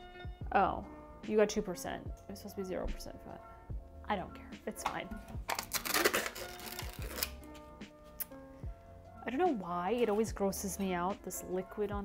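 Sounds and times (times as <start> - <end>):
background music: 0.0 - 12.0
foil seal peeling off tub: 5.4 - 7.5.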